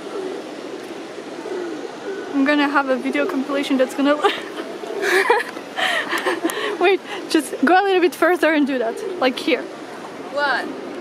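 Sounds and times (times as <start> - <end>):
open-air ambience hiss: 0.0 - 11.0
pigeons cooing: 0.0 - 11.0.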